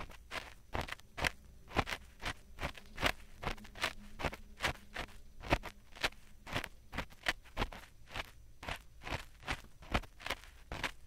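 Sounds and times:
ear pick scratching microphone: 0:00.0 - 0:11.0.

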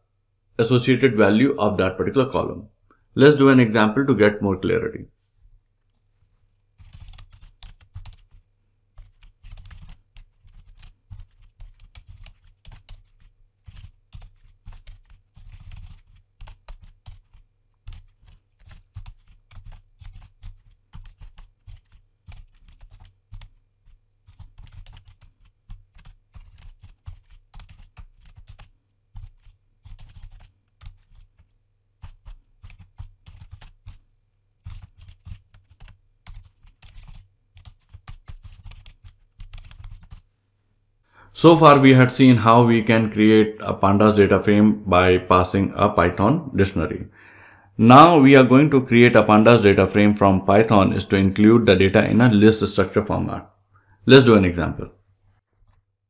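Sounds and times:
typing on computer keyboard: 0:06.8 - 0:40.2.

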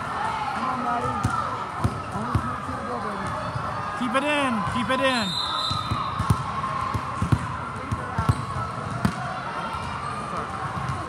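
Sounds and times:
chatter in echoing hall: 0:00.0 - 0:11.0
volleyballs bouncing on floor: 0:00.9 - 0:02.6, 0:05.8 - 0:09.9.

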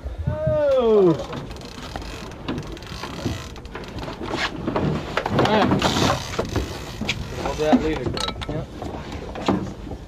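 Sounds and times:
water noise: 0:00.0 - 0:10.0
wind: 0:00.0 - 0:10.0.

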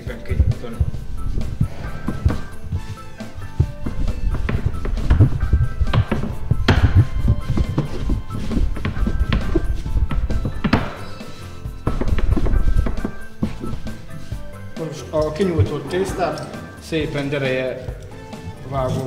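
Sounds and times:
background music: 0:00.0 - 0:19.0
rolling pin knocking on board: 0:03.6 - 0:11.1, 0:11.8 - 0:14.0.

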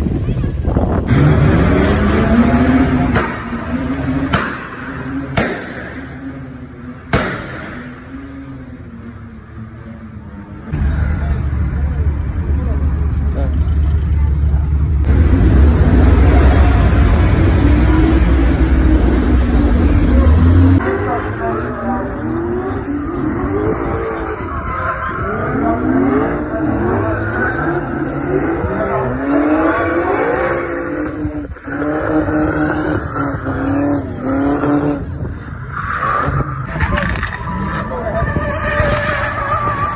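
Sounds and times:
car engines revving: 0:00.0 - 0:39.9
loud low rumble: 0:10.7 - 0:20.8.

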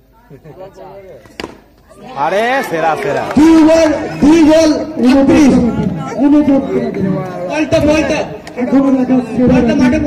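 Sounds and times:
cricket bat striking ball: 0:01.2 - 0:01.7.

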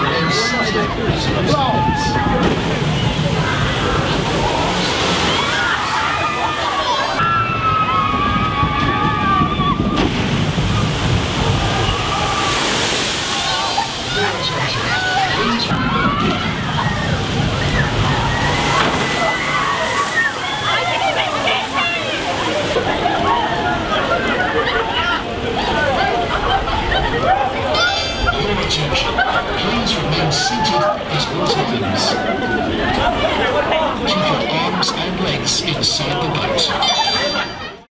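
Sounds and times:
many people's voices: 0:00.0 - 0:37.9
water sloshing and rushing: 0:00.0 - 0:37.9.

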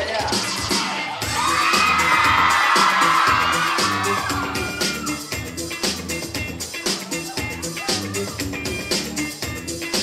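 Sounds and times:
upbeat dance music: 0:00.0 - 0:10.0
audience shouting and whooping: 0:00.7 - 0:05.7, 0:06.9 - 0:08.8.

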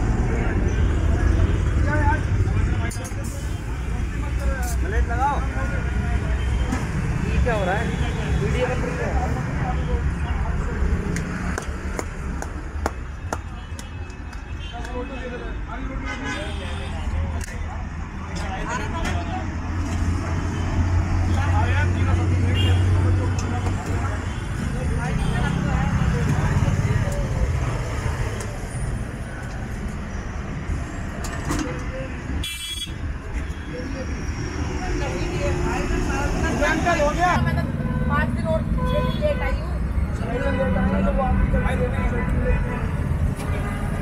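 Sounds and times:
road traffic rumble: 0:00.0 - 0:44.0
people talking: 0:00.2 - 0:11.6, 0:21.2 - 0:29.4, 0:33.3 - 0:44.0.

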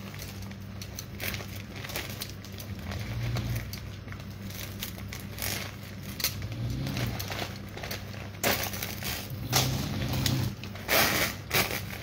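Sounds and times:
handbag rustling and crinkling: 0:00.0 - 0:12.0.

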